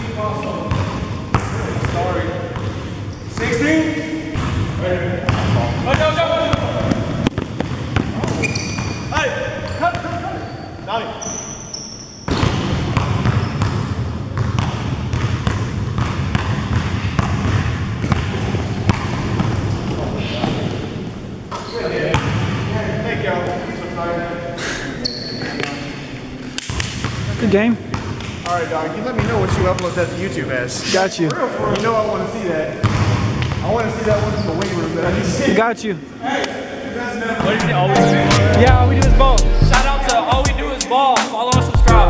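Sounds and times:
basketball bouncing on gym floor: 0.7s - 2.8s, 4.4s - 9.0s, 12.3s - 20.6s, 32.8s - 34.2s.

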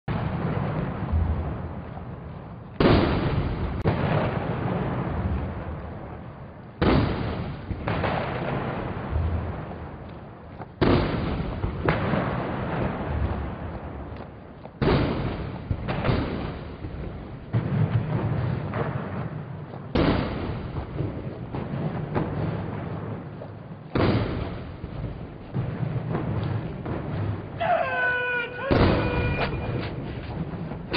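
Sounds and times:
cannons firing with echo: 0.1s - 30.9s.

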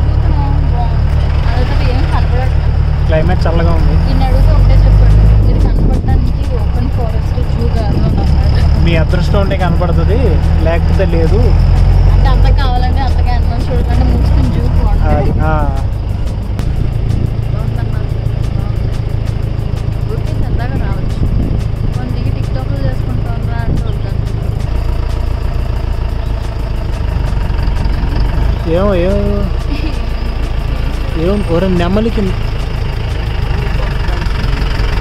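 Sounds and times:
vehicle engine running: 0.0s - 35.0s
wind buffeting microphone: 3.7s - 24.8s.

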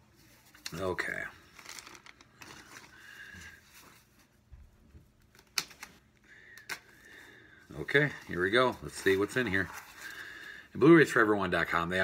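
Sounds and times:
cardboard rustling: 0.0s - 6.0s, 7.7s - 10.5s.

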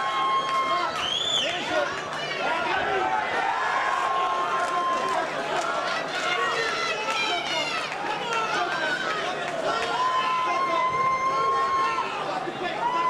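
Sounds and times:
spectators shouting: 0.0s - 13.0s.

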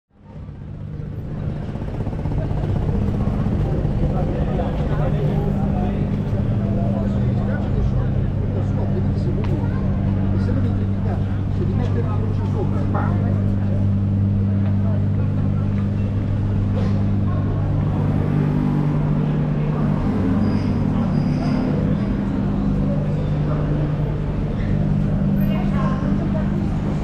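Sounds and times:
background chatter of passers-by: 0.1s - 27.0s
low hum of traffic: 0.1s - 27.0s.

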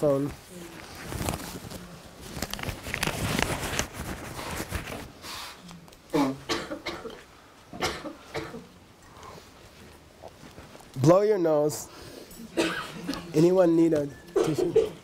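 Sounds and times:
fabric rustling on lapel microphone: 0.0s - 6.1s, 9.4s - 11.4s
throat clearing sounds: 6.1s - 8.8s, 14.3s - 15.0s.

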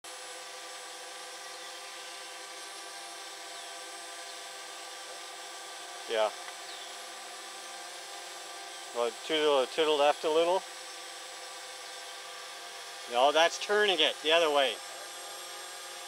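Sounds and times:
drone motors humming: 0.0s - 16.0s.

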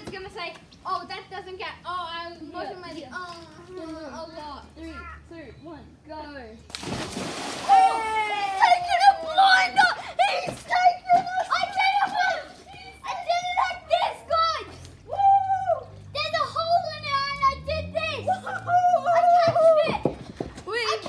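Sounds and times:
children yelling and cheering: 7.6s - 21.0s.

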